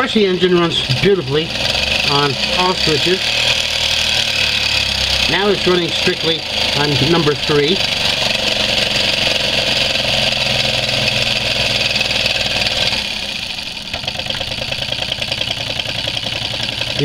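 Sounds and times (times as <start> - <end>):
miniature solenoid engine running: 0.0 - 17.0.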